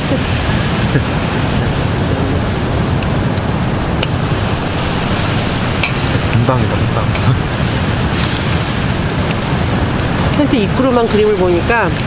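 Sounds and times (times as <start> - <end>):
sea surf breaking: 0.0 - 12.0
wind rumbling on microphone: 0.0 - 12.0.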